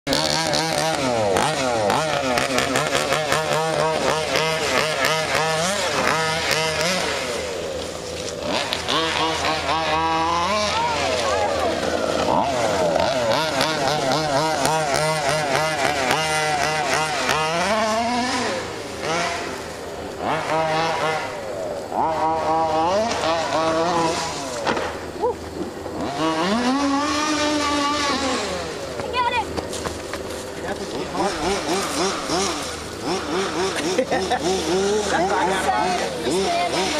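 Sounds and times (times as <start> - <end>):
two-stroke engine revving: 0.0 - 36.9.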